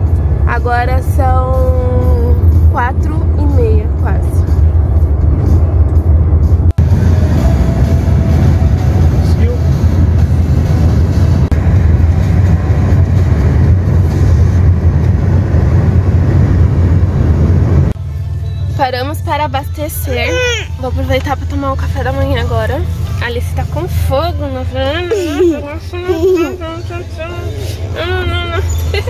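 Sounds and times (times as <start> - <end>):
road and wind noise inside car: 0.0 - 29.0.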